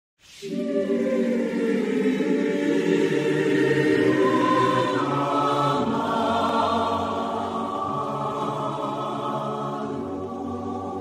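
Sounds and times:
choir singing sustained chords: 0:00.3 - 0:11.0.

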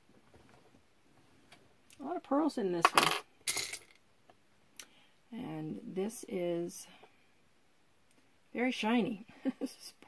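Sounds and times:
metal jewelry clinking: 0:02.9 - 0:04.0.

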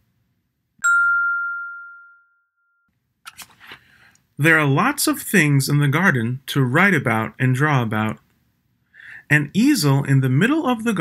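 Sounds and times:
chime ringing on one tone: 0:00.8 - 0:02.9.

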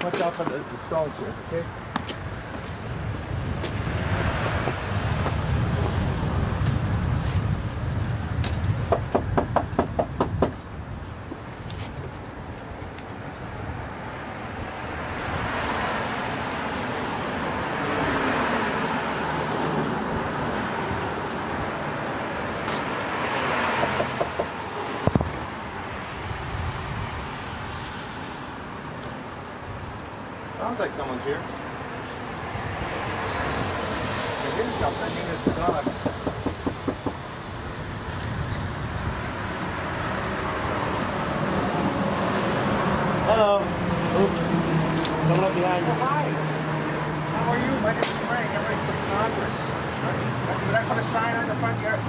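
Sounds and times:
cars passing: 0:00.0 - 0:52.0
sharp knock: 0:35.4 - 0:37.2.

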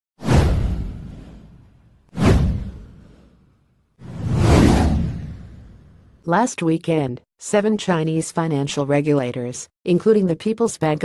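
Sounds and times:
whoosh sound effects: 0:02.2 - 0:06.1.

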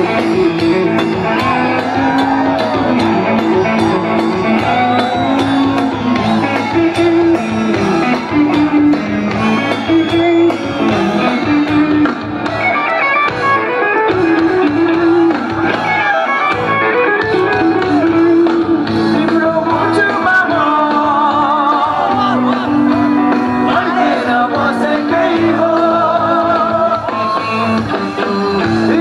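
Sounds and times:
guitar melody: 0:00.0 - 0:29.0
live band instrumental: 0:00.0 - 0:29.0.

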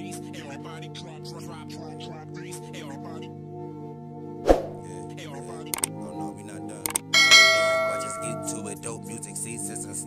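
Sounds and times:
background music: 0:00.0 - 0:10.0
bell-like notification chime: 0:07.2 - 0:08.8.

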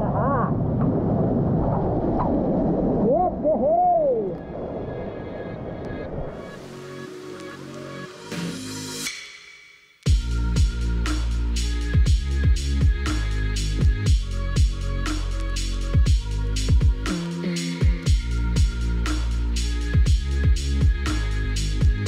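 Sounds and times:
music: 0:05.9 - 0:22.0.

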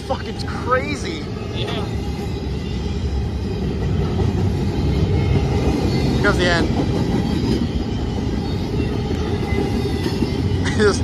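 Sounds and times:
freight train wheels rumbling: 0:00.0 - 0:11.0.

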